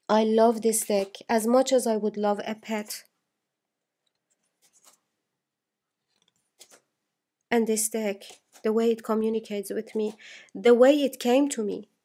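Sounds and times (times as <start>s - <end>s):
cards rustling: 4.1s - 5.2s, 6.0s - 6.9s, 8.1s - 9.1s.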